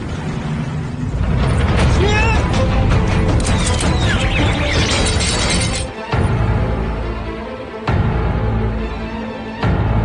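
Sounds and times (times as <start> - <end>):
low sustained trailer music: 0.0 - 10.0.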